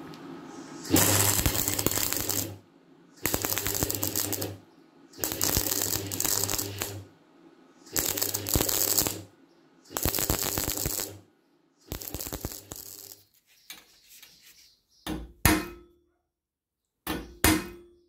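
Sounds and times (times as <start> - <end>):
low mains hum: 0.0 - 13.3
welder arc crackling and sizzling: 0.0 - 13.4.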